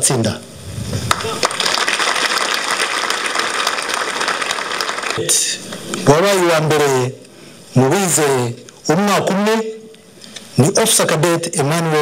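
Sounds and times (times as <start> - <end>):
crowd applauding: 1.0 - 5.2.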